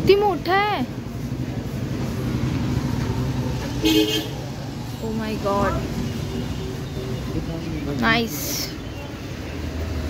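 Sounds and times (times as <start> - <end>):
low traffic rumble: 0.0 - 10.0
vehicle horn toot: 3.8 - 4.4.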